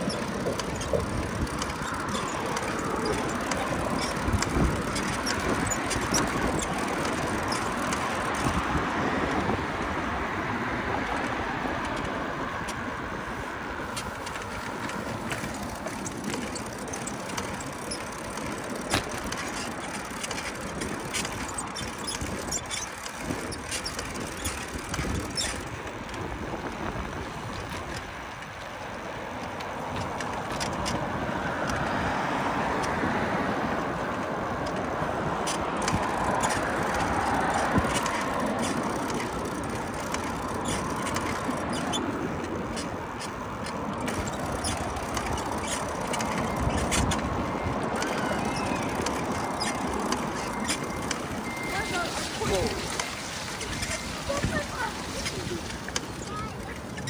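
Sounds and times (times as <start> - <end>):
bicycle rattling and clicking: 0.0 - 57.0
road traffic passing: 0.0 - 57.0.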